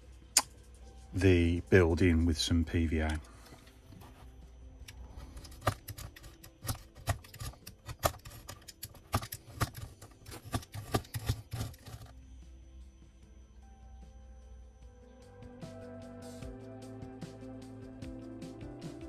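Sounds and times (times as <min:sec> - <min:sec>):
faint background music: 0:00.0 - 0:19.0.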